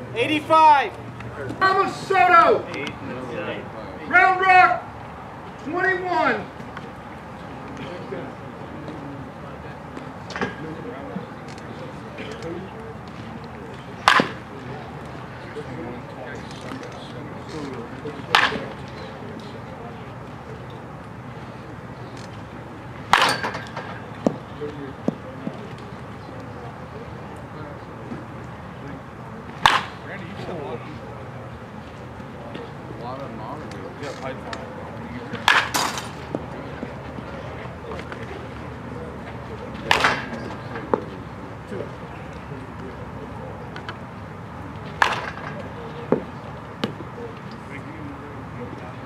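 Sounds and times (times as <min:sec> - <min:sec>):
background chatter: 0:00.0 - 0:49.0
bat cracking a ball: 0:14.0 - 0:14.5, 0:18.3 - 0:18.8, 0:23.1 - 0:24.4, 0:29.6 - 0:30.0, 0:35.3 - 0:36.4, 0:39.8 - 0:41.1, 0:44.9 - 0:47.0.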